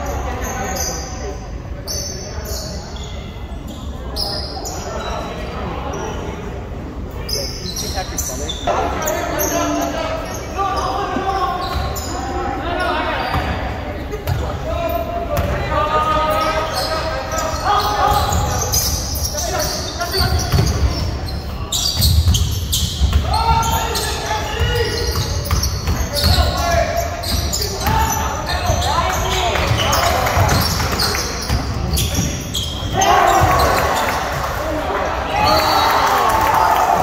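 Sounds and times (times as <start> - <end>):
echoing voices in gym: 0.0 - 37.0.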